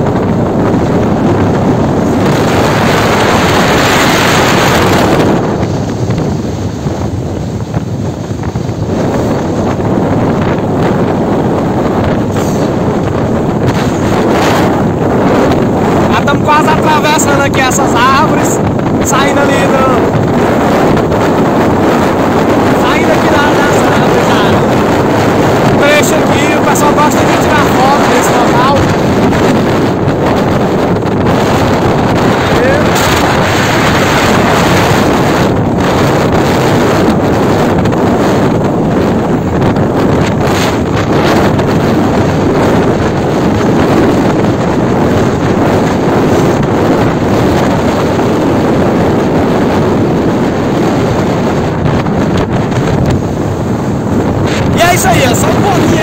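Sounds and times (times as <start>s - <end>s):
truck engine: 0.0s - 17.1s, 18.0s - 56.0s
road noise: 0.0s - 56.0s
wind rushing over microphone: 0.0s - 56.0s.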